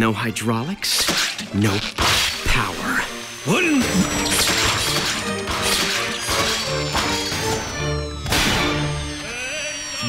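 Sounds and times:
dramatic orchestral music: 0:00.0 - 0:09.3
hydraulic hoses ripping and spraying: 0:00.8 - 0:10.0.

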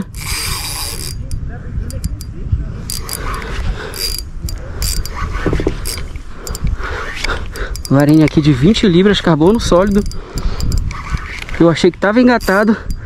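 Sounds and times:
fishing reel clicking: 0:00.0 - 0:13.0.

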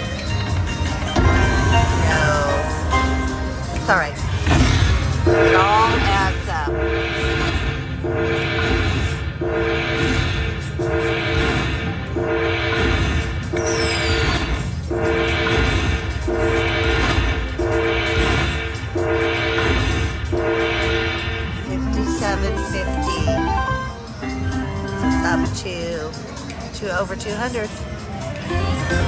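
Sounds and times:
slot machine two-note chime: 0:21.8 - 0:25.6.

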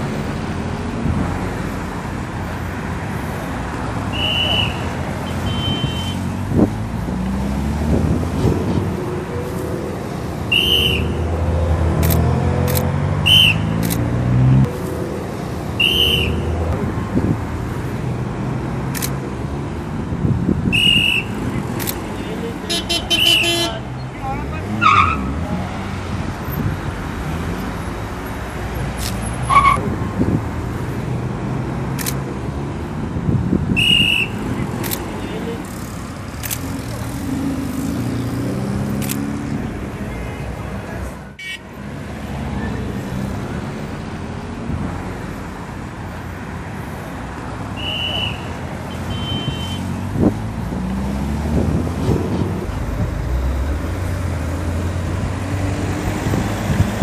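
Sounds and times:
passing cars: 0:00.0 - 0:57.0
voices talking: 0:01.9 - 0:14.1, 0:20.7 - 0:30.0, 0:33.8 - 0:44.5, 0:45.8 - 0:51.1
shrill police whistle blasts: 0:04.1 - 0:06.2, 0:10.5 - 0:11.2, 0:13.3 - 0:13.7, 0:15.8 - 0:16.5, 0:20.7 - 0:21.4, 0:33.8 - 0:34.4, 0:47.8 - 0:49.8.

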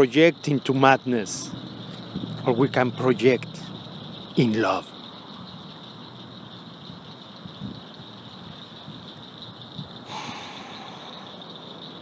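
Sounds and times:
insect drone: 0:00.0 - 0:12.0.

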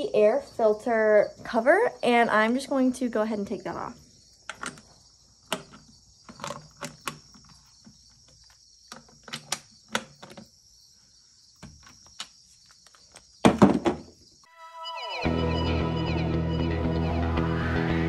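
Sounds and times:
high insect buzz: 0:00.0 - 0:15.6
music: 0:14.5 - 0:18.0.

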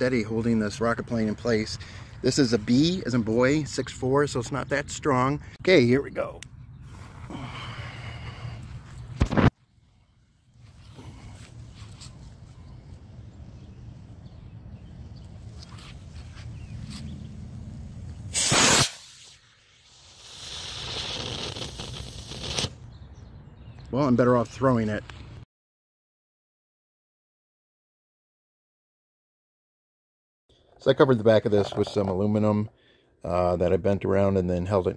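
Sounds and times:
rocket motor hissing: 0:16.9 - 0:22.8
model rocket motor rushing burst: 0:18.3 - 0:22.8.

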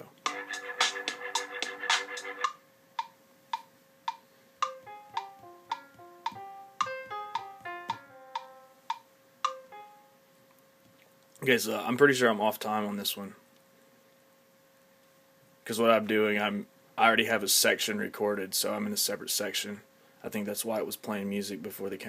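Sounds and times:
recorded music: 0:00.0 - 0:10.2
metronome clicking: 0:02.4 - 0:09.8
piano single notes: 0:04.6 - 0:10.1.

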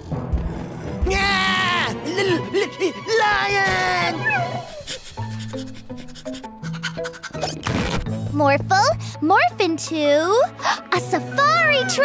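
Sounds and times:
cat-like cry: 0:03.4 - 0:04.8.

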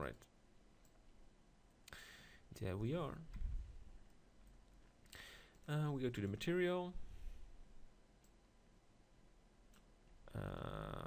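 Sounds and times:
soft low thump: 0:03.3 - 0:03.8.

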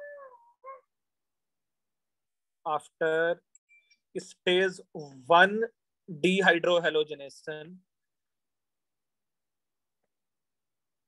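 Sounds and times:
high-pitched animal call: 0:00.0 - 0:00.9.

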